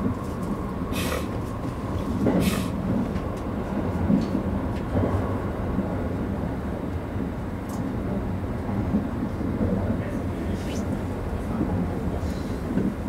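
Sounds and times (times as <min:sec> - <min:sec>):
train wheels rumbling on track: 0:00.0 - 0:13.0.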